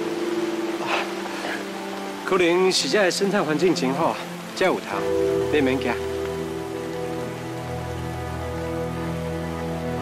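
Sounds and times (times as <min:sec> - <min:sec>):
soft music of held chords: 0:00.0 - 0:10.0.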